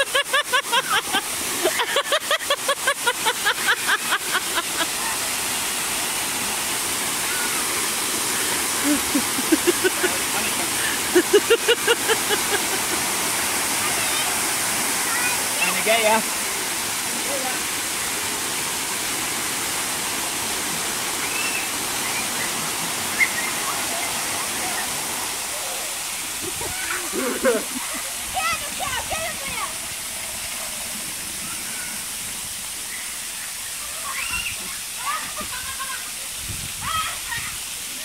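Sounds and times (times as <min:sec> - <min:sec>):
spraying and falling water: 0:00.0 - 0:38.0.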